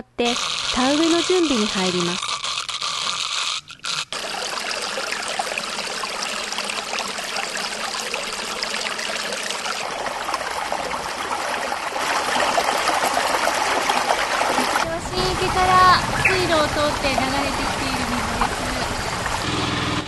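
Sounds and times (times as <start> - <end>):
water running and trickling: 0.2 - 19.5.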